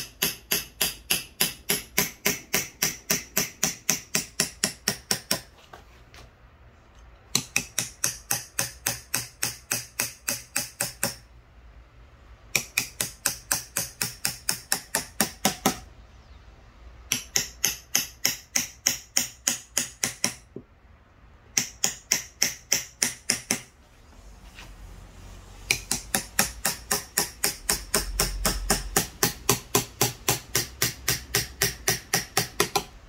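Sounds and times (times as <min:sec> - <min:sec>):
hammer tapping carving knife: 0:00.0 - 0:05.5, 0:07.3 - 0:11.3, 0:12.5 - 0:15.9, 0:17.1 - 0:20.7, 0:21.5 - 0:23.7, 0:25.7 - 0:33.0.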